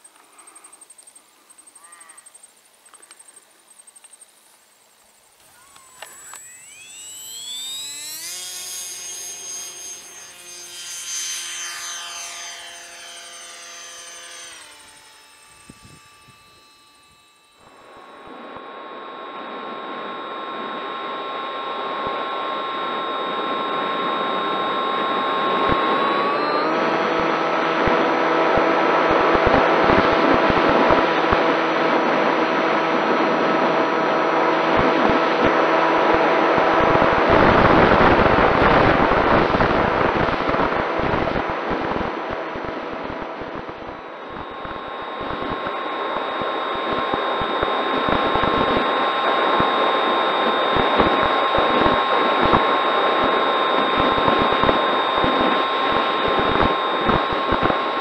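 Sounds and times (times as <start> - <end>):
electric motor and propeller whining: 4.4 - 58.0
rushing wind: 25.4 - 58.0.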